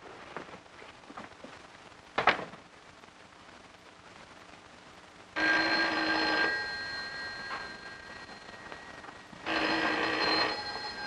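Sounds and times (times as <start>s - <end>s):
telephone bell ringing: 5.4s - 11.0s.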